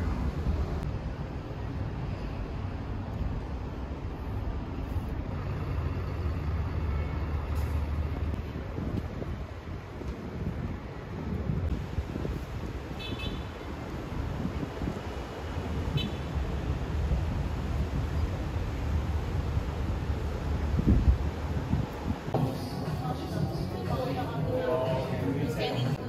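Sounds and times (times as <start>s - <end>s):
distant city traffic: 0.0s - 26.0s.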